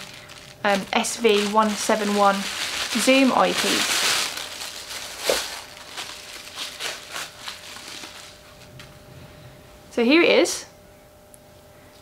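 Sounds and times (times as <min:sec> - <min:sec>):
packaging rustling and crinkling: 0:00.0 - 0:08.8.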